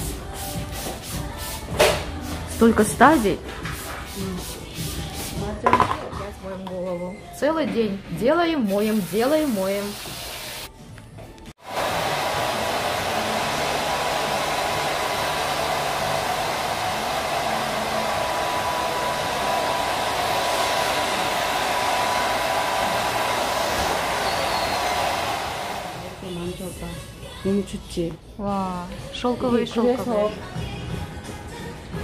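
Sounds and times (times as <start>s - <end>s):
hair dryer blowing: 8.7s - 10.7s, 11.6s - 26.4s.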